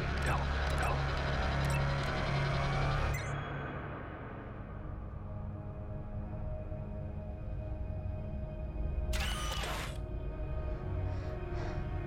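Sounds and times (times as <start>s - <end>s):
low tense music drone: 0.0s - 12.0s.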